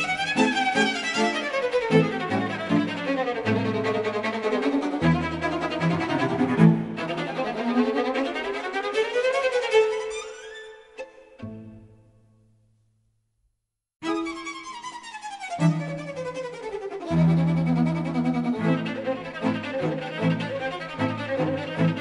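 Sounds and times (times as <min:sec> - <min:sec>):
low bowed string notes: 0:00.0 - 0:08.6, 0:14.1 - 0:22.0.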